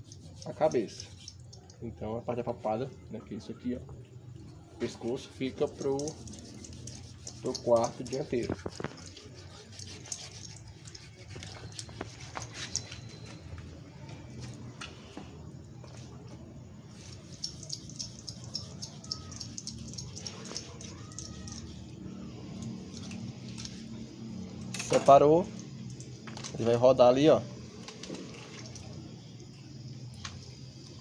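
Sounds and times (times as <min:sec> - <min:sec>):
low background hum: 0:00.0 - 0:31.0
faint clicks and scrapes: 0:04.4 - 0:16.2
knife cutting meat: 0:05.6 - 0:13.1.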